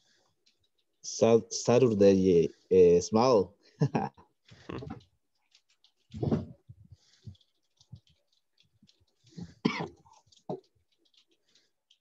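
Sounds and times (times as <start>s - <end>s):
person coughing: 9.6s - 10.0s.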